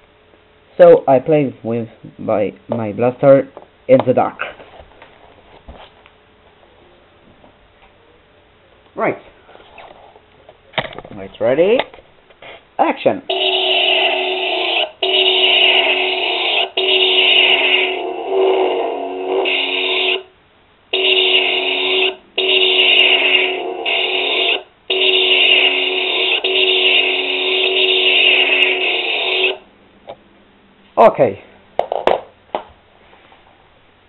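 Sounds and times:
toy blaster sound effects: 0:13.3 - 0:18.2, 0:19.0 - 0:20.2, 0:21.0 - 0:29.6.

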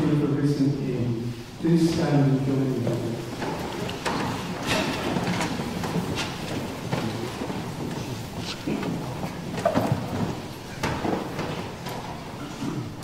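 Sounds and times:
chairs scraping and feet shuffling: 0:01.3 - 0:13.0.

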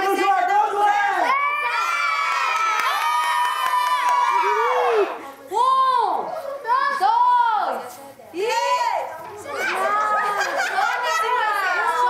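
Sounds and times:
children shouting and cheering: 0:01.2 - 0:07.6, 0:09.4 - 0:12.0.

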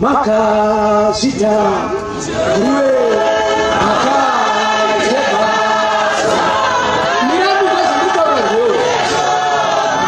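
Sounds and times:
congregation singing in chorus: 0:01.8 - 0:10.0.

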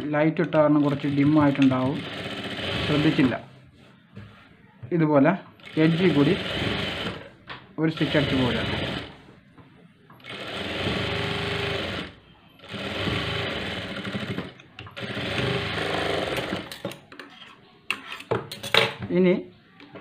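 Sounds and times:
sewing machine stitching: 0:00.5 - 0:03.4, 0:05.6 - 0:07.3, 0:07.9 - 0:09.2, 0:10.2 - 0:17.0.

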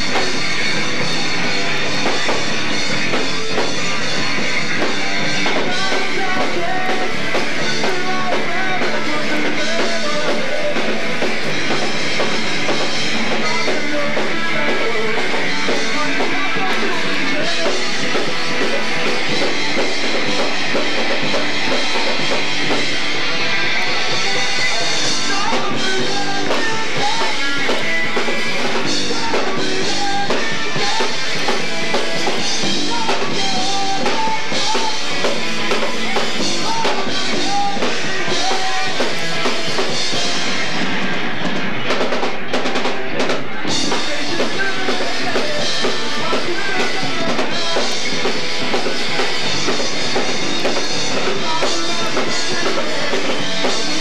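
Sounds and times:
drum kit: 0:00.0 - 0:54.0
electric guitar: 0:00.0 - 0:54.0.

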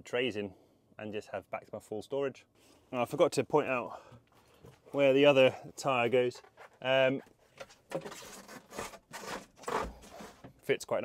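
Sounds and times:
tyre scraping against wood: 0:06.3 - 0:10.7.

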